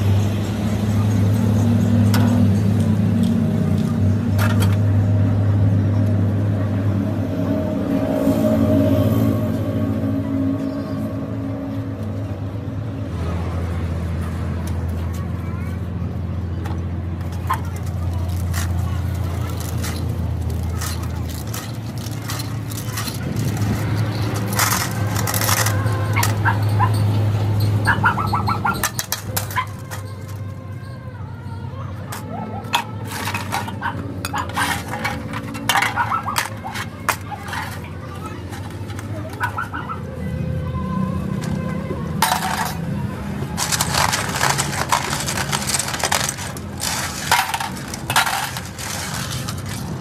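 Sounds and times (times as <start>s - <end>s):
metal rollers clinking in pan: 17.3s - 30.9s, 32.1s - 39.8s, 42.2s - 50.0s.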